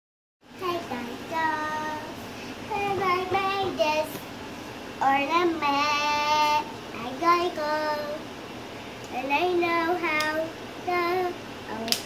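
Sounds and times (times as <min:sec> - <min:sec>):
girl singing unaccompanied: 0:00.5 - 0:08.4, 0:09.0 - 0:12.0.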